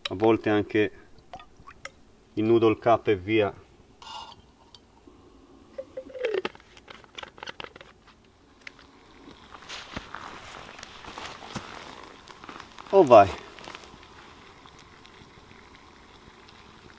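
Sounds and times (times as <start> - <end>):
alcohol stove burning: 0.0 - 16.9
handling dry leaves: 9.4 - 14.0.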